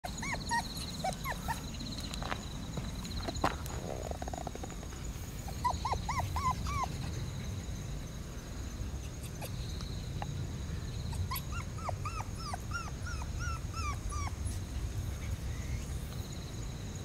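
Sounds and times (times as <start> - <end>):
puppies whimpering and yipping: 0.0 - 1.8, 5.4 - 7.4, 9.2 - 9.6, 11.1 - 14.8.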